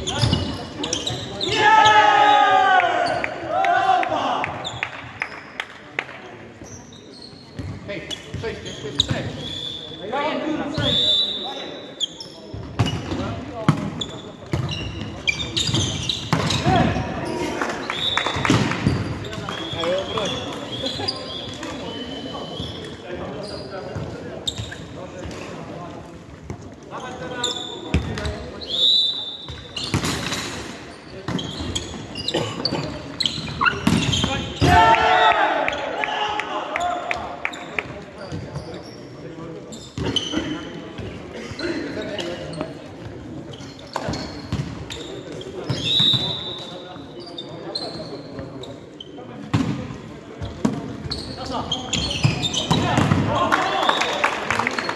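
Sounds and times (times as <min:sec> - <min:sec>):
shoes squeaking on wooden floor: 0:00.0 - 0:01.6, 0:06.6 - 0:09.9, 0:13.9 - 0:25.0, 0:30.9 - 0:34.7, 0:37.5 - 0:49.3, 0:50.3 - 0:53.2.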